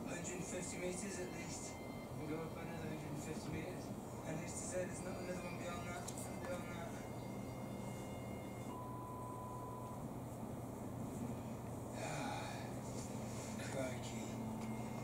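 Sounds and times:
steady low hum: 0.0 - 15.0
television music: 0.0 - 15.0
television voices: 0.0 - 15.0
steady tone: 6.7 - 15.0.

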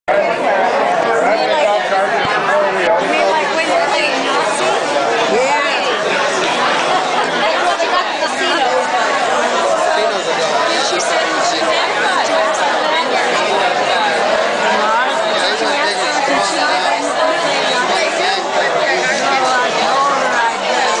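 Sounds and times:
crowd chatter: 0.1 - 21.0.

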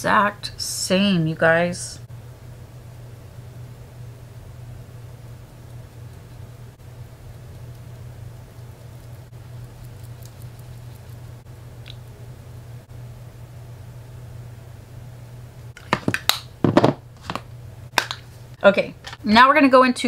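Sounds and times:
low hum: 2.0 - 15.9.

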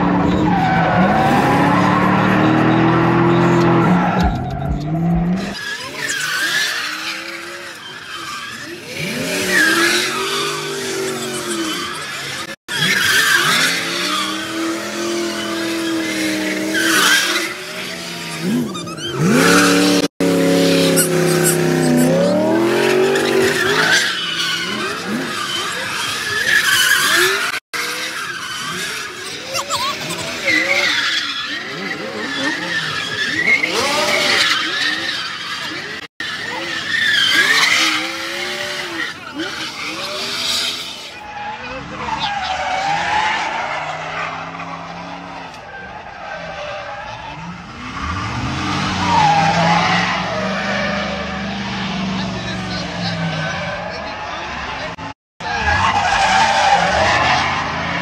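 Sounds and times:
crowd voices: 0.0 - 46.2, 48.8 - 58.0
car engines revving: 0.0 - 58.0
tires squealing and skidding: 0.0 - 58.0.

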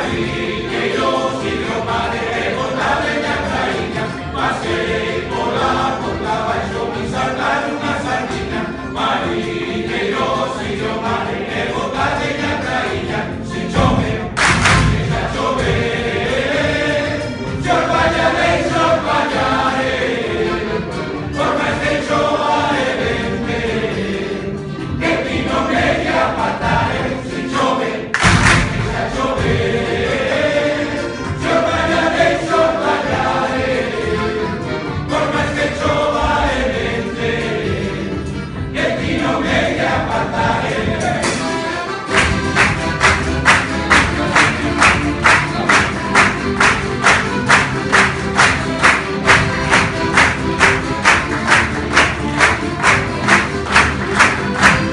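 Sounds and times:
accordion: 0.0 - 54.9
guitars: 0.0 - 54.9
male choir singing folk song: 0.0 - 54.9
plucked string instrument: 0.0 - 54.9
drum: 13.7 - 15.9, 28.2 - 30.0
loud thumps: 13.7 - 15.9, 28.2 - 29.8.

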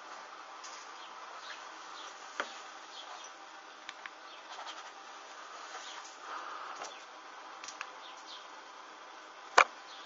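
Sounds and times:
small flame hissing and crackling: 4.5 - 7.8.

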